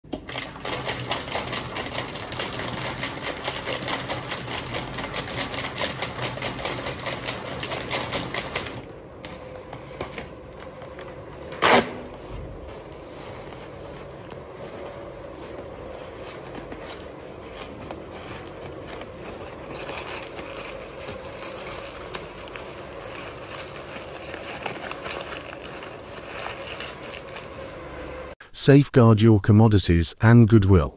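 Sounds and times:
paper crinkling and rustling: 0.1s - 28.3s.

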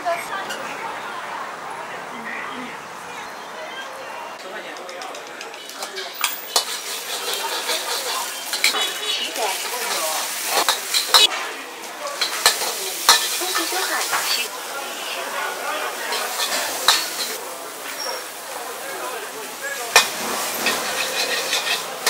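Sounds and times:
street ambience: 0.0s - 22.0s
metal ladle scraping a wok: 5.8s - 11.3s, 12.2s - 14.5s, 16.1s - 17.4s, 20.0s - 22.0s
vegetables sizzling: 5.9s - 22.0s.

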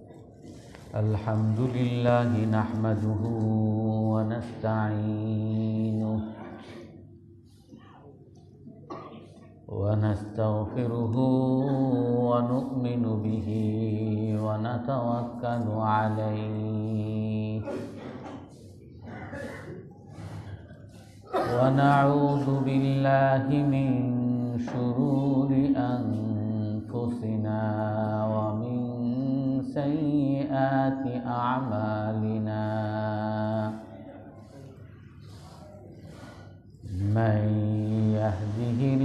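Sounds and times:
room noise: 0.0s - 39.0s
man chanting slowly: 0.7s - 7.0s, 9.7s - 18.0s, 21.4s - 39.0s.

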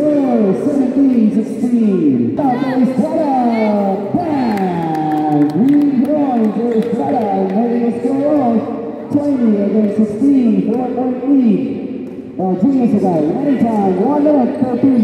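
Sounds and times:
man commentating: 0.0s - 11.8s, 12.4s - 15.0s.

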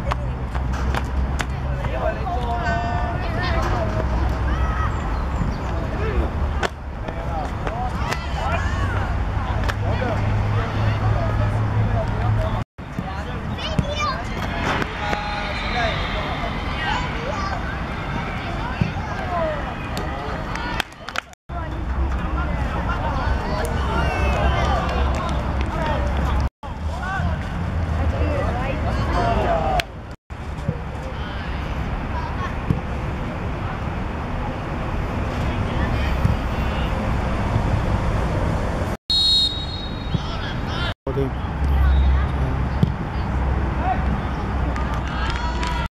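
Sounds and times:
young players shouting: 2.0s - 5.3s, 7.9s - 11.5s, 44.8s - 45.9s
distant shouts of players: 13.6s - 20.9s, 39.1s - 40.9s
referee's whistle blast: 39.1s - 40.3s.

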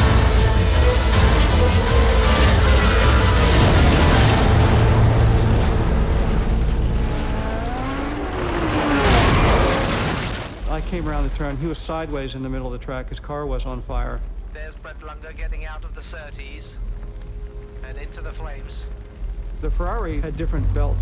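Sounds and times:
racing cars: 0.0s - 10.6s
dramatic music: 0.0s - 21.0s.

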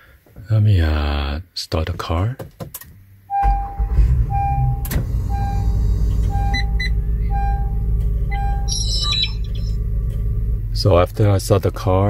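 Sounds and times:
car engine starting and idling: 2.8s - 12.0s
dashboard chime beeping: 3.3s - 9.8s.

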